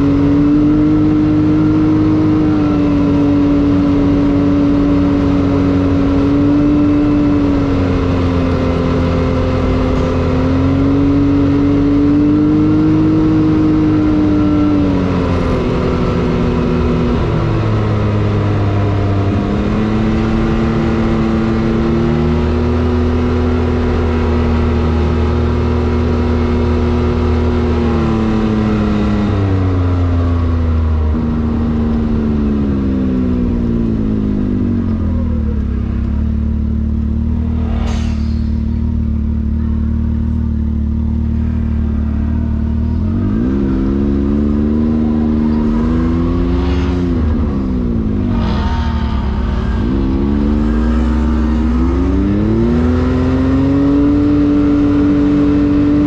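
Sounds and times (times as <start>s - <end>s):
utv engine revving: 0.0s - 56.0s
short rushing sounds: 37.2s - 39.2s.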